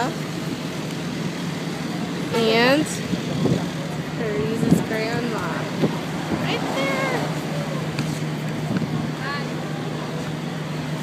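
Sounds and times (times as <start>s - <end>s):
low hum of road traffic: 0.0s - 11.0s
faint voices: 1.4s - 11.0s.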